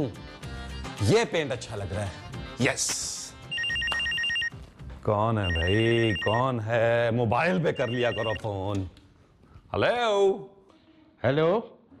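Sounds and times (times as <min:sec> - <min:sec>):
telephone ringing: 0:03.5 - 0:04.6, 0:05.4 - 0:06.6, 0:07.6 - 0:08.5.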